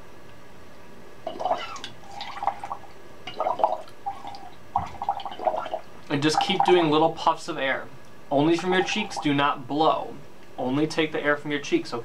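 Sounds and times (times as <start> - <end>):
air bubbling through straws in water: 1.3 - 5.8.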